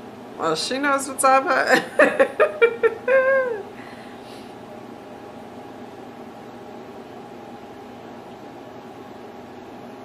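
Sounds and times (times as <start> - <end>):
woman laughing: 1.6 - 3.8.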